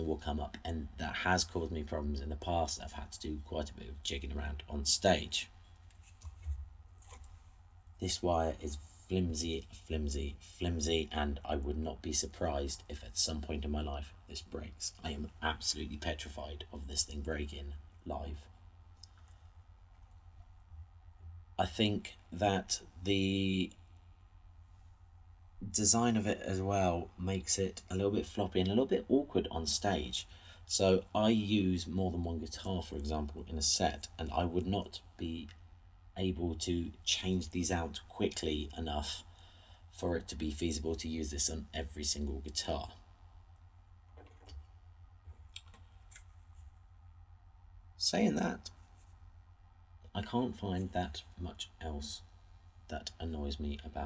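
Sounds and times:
steady low hum: 0.0s - 54.0s
faint clicks of microphone handling: 5.8s - 7.4s.

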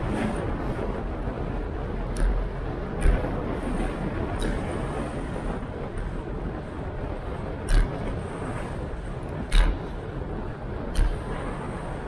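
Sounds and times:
bicycle road rumble: 0.0s - 12.0s
wind: 0.0s - 12.0s.

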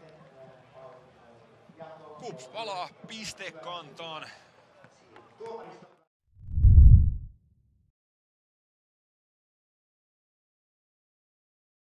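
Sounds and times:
quiet stadium background: 0.0s - 7.3s.

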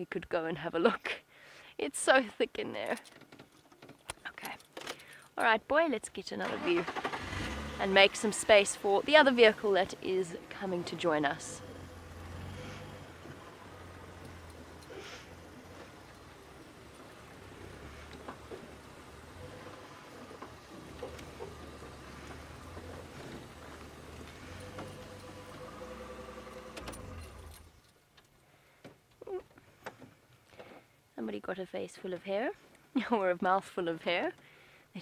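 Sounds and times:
vehicle engine rumbling: 4.2s - 28.4s.

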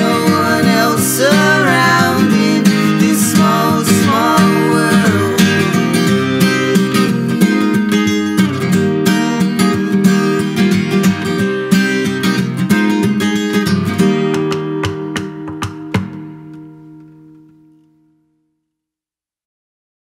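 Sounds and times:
acoustic guitar strumming: 0.0s - 18.3s.

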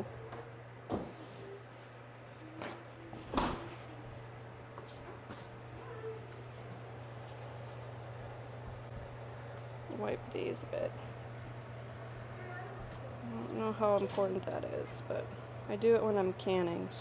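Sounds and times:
low appliance hum: 0.0s - 17.0s.

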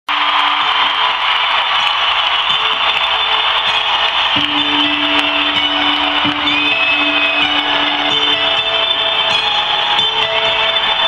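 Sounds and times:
crowd screaming and cheering: 0.1s - 11.0s.

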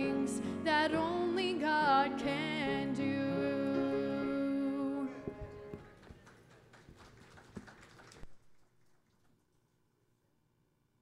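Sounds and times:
faint footsteps: 5.1s - 8.4s.

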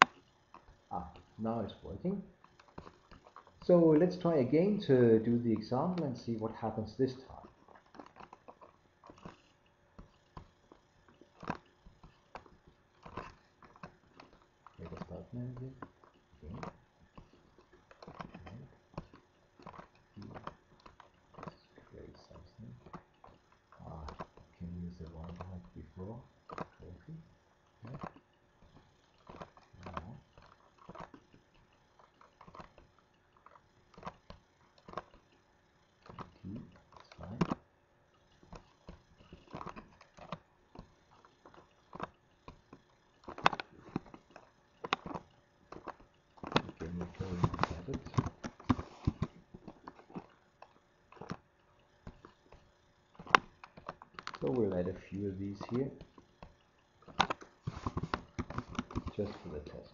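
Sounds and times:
computer mouse clicks: 2.5s - 27.0s.

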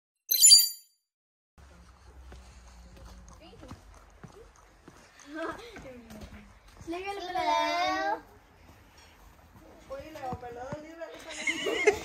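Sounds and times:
light taps and footsteps: 1.6s - 11.4s.

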